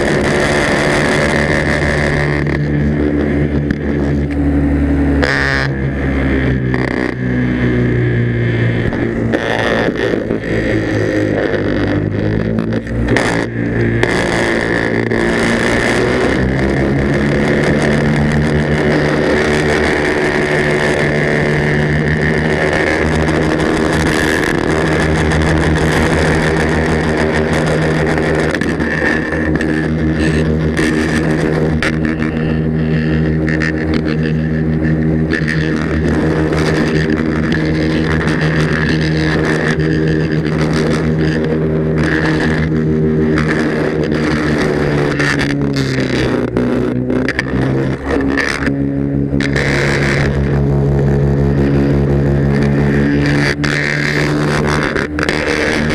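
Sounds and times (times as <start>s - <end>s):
paraglider engine and propeller: 0.0s - 55.9s.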